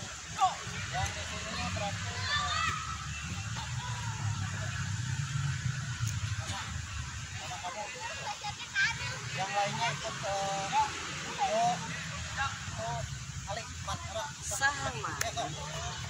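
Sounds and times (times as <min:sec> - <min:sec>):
children calling out: 0:00.4 - 0:05.0.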